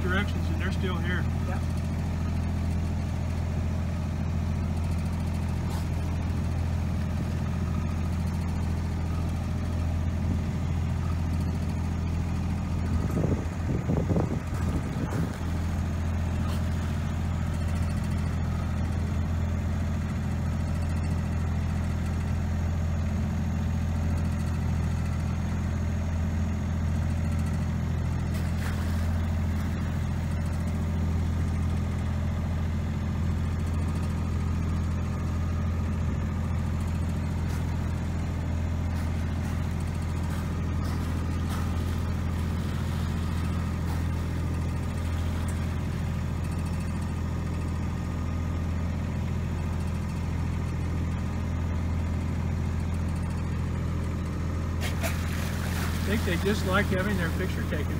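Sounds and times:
boat engine humming: 0:00.0 - 0:57.9.

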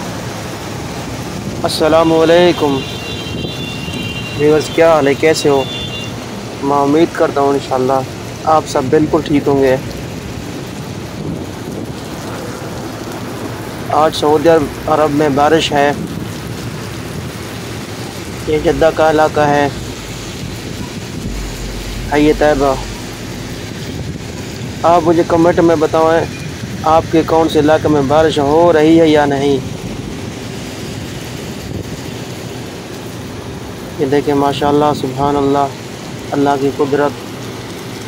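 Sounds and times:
heavy rain on flooded street: 0:00.0 - 0:38.0.

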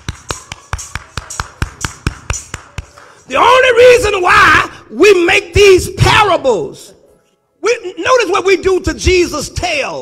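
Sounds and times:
hand clapping: 0:00.0 - 0:03.3.

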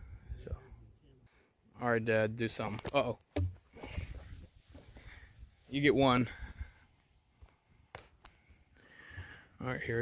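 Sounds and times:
disc landing on grass: 0:02.8 - 0:05.1.

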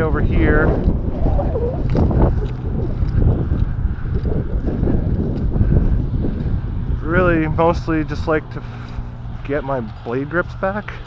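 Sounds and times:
wind rumbling on microphone: 0:00.0 - 0:11.0
footsteps on grass: 0:00.9 - 0:11.0.

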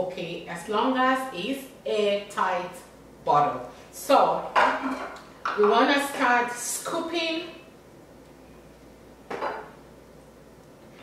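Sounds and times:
kitchen items knocking on countertop: 0:09.3 - 0:09.7.

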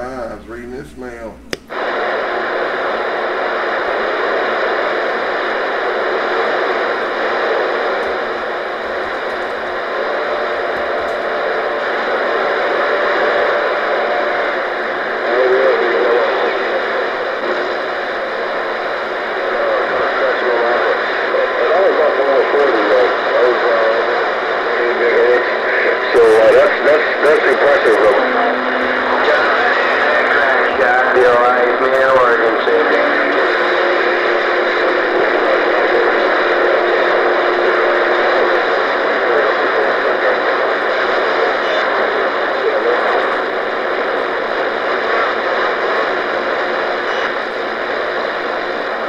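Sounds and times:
radio static hiss: 0:00.0 - 0:49.0.

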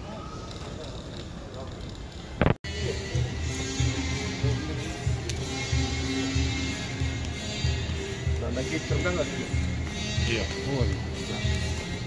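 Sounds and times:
background music with steady beat: 0:02.6 - 0:12.0.

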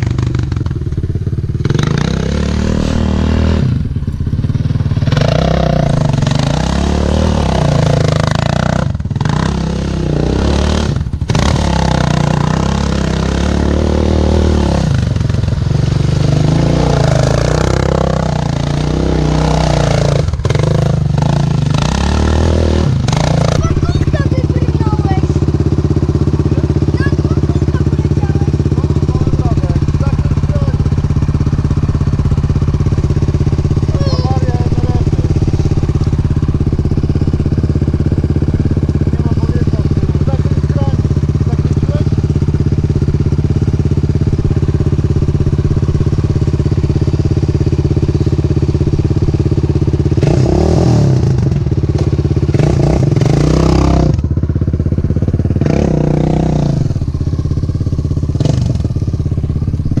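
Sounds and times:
engine revving: 0:00.0 - 1:00.0
small engine idling: 0:00.0 - 1:00.0.

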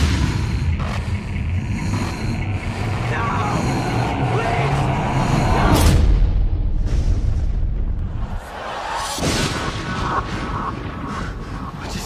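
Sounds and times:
loud steady rumbling: 0:00.0 - 0:08.6.

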